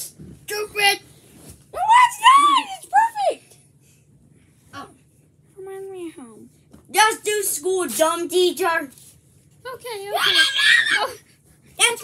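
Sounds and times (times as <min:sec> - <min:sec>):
child crying out: 0:10.1 - 0:11.2.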